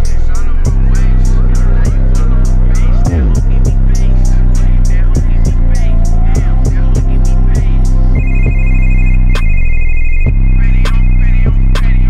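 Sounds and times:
music with heavy bass: 0.0s - 12.0s
telephone ring trill: 8.2s - 11.4s.

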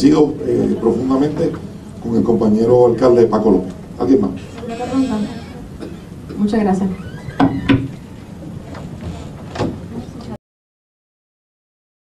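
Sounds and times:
people moving about in a room: 0.0s - 10.4s.

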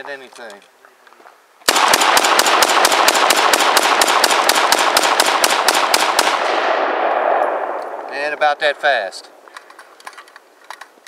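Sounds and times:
rapid rifle shots: 1.7s - 7.4s
gunshot echo: 1.7s - 9.3s.

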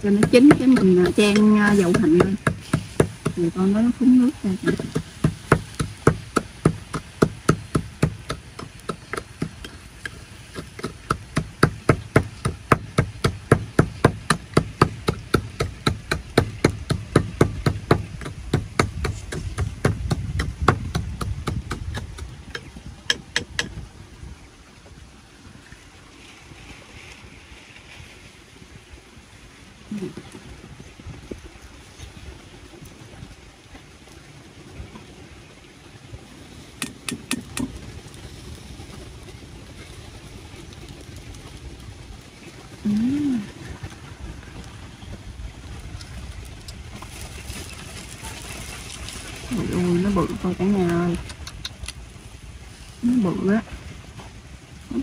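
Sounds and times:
pestle pounding in ceramic bowl: 0.1s - 3.4s, 4.7s - 9.8s, 10.5s - 23.7s.

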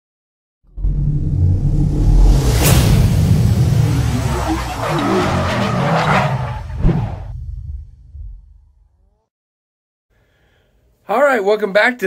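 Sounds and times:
deep rumble: 0.6s - 9.0s
loud noisy whooshes: 0.7s - 7.4s
sharp hit: 0.7s - 8.5s.

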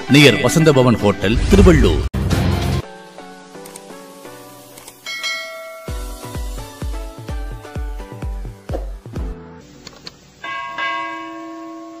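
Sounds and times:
bell-like chime: 5.0s - 6.2s, 10.4s - 12.0s.

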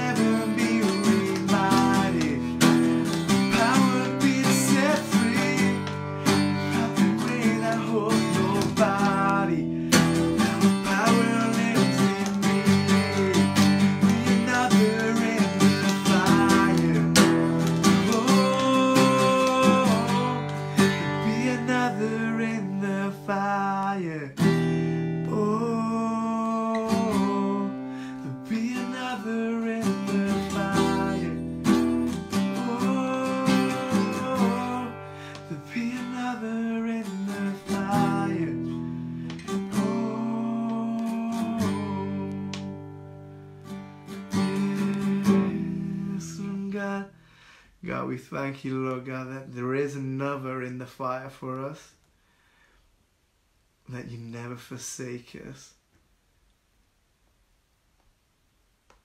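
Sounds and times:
man singing: 0.0s - 42.8s, 44.2s - 47.2s, 47.8s - 52.0s
acoustic guitar strumming: 0.0s - 47.5s.

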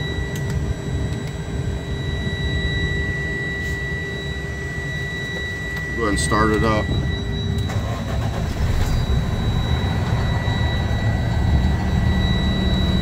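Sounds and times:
diesel engine starting and idling: 7.6s - 13.0s.

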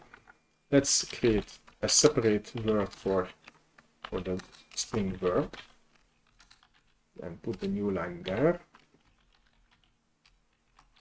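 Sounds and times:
computer keyboard keystrokes: 1.0s - 11.0s.

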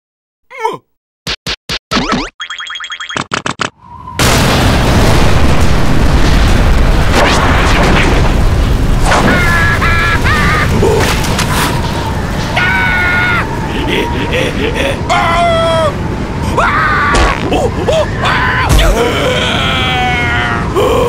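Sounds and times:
springy boing effects: 1.9s - 3.3s
gale-force wind rush: 3.8s - 21.0s.

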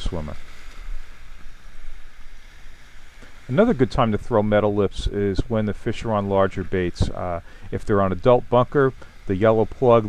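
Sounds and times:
small surf waves on beach: 0.0s - 10.0s
wind on microphone: 0.0s - 10.0s.

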